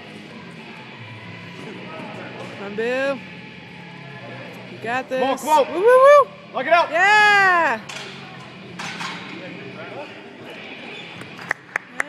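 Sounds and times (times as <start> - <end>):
murmur of voices: 0.0 - 12.0
hands clapping: 11.3 - 12.0.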